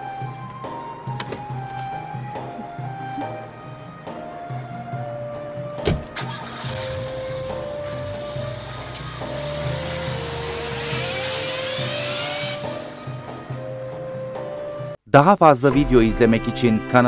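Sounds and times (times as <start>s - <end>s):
background music with held notes: 0.0s - 15.0s, 15.7s - 17.0s
car engine and tyre noise: 5.4s - 14.9s
car door slamming: 5.8s - 6.4s.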